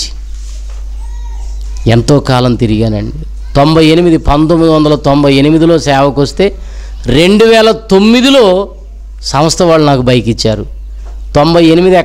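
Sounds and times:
man speaking through microphone: 1.8s - 12.0s.

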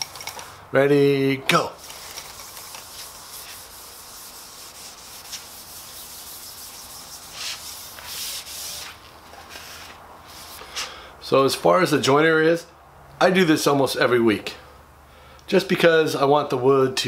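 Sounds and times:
pad rubbing wax on metal: 1.8s - 10.6s.

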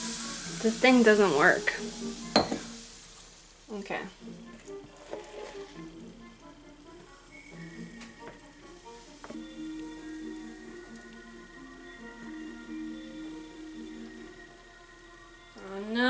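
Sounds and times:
soft background music: 0.0s - 16.0s.

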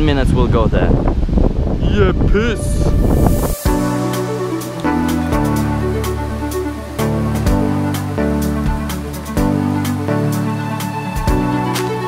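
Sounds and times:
electronic music with steady beat: 2.7s - 12.0s.

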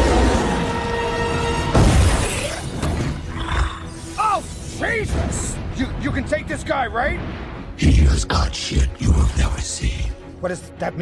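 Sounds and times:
dramatic film score: 0.0s - 11.0s.

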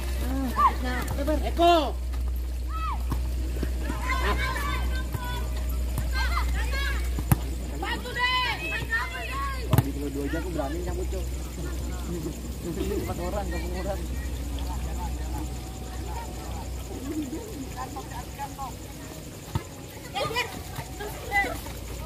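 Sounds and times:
steady low hum: 0.0s - 22.0s
ball kicked: 2.2s - 4.5s, 5.1s - 8.0s, 8.6s - 10.1s, 19.5s - 20.9s
people shouting short calls: 2.6s - 14.6s.

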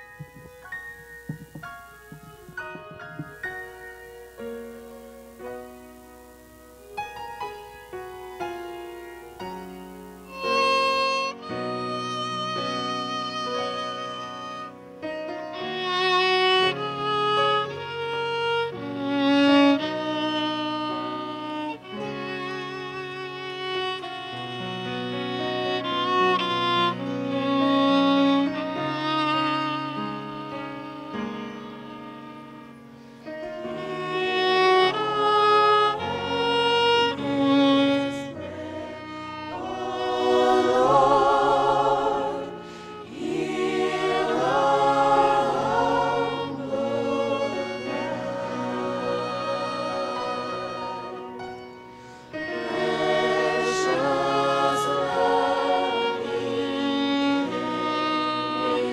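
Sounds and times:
violin melody with vibrato: 0.0s - 58.9s
women singing: 33.8s - 51.2s, 52.5s - 58.9s.

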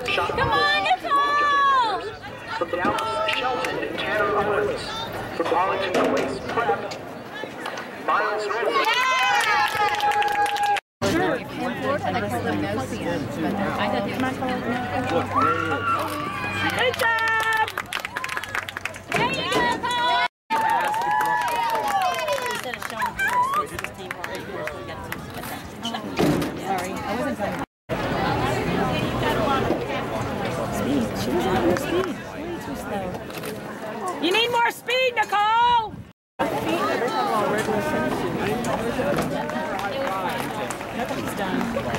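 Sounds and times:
background chatter: 0.0s - 9.3s, 11.0s - 41.9s
spectators talking and calling: 0.0s - 10.4s, 11.0s - 41.9s.

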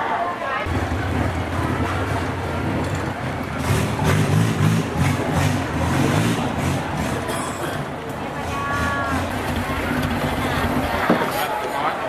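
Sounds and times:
boat engine running: 0.7s - 11.4s.

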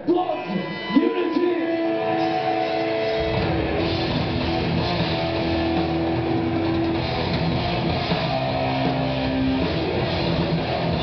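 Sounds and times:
electric guitars holding long notes: 0.0s - 11.0s
heavy metal band playing: 0.0s - 11.0s.

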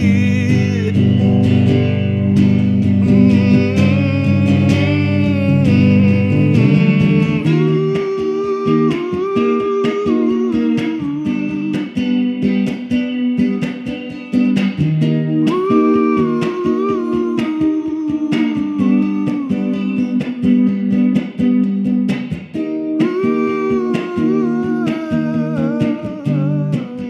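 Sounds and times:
electric guitar strumming chords: 0.0s - 27.0s.

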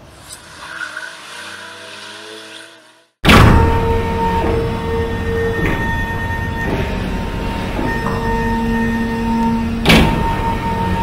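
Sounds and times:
low drone: 0.0s - 11.0s
loud boom: 3.2s - 5.0s.

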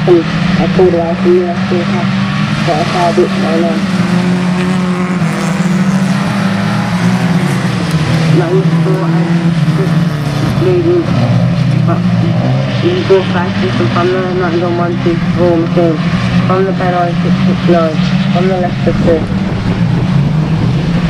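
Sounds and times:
racing car engines at high revs: 0.0s - 21.0s.

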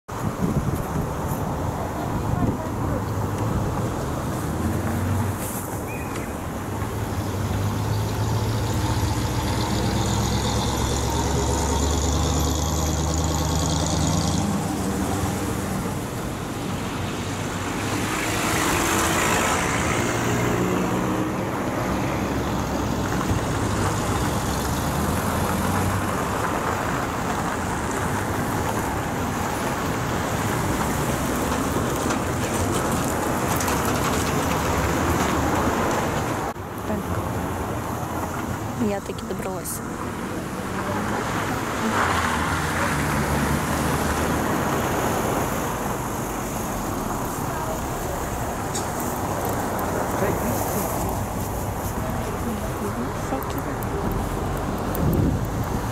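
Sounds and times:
road traffic: 0.0s - 55.9s
vehicle passing close: 1.0s - 55.9s.

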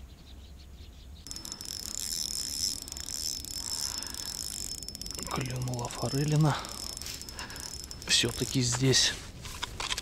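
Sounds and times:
fishing reel whirring and ticking: 1.3s - 10.0s.

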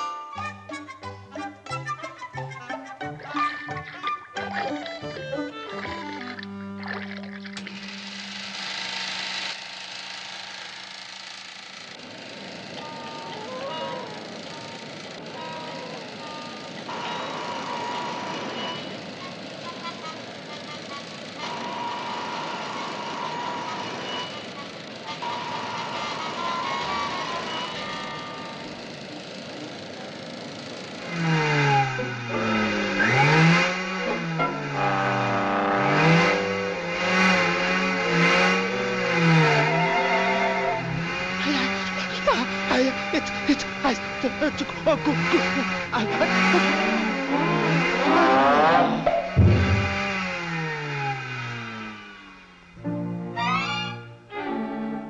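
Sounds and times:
lively cartoon music with pitch slides: 0.0s - 8.0s, 31.8s - 37.3s, 38.3s - 41.9s, 52.8s - 55.0s.

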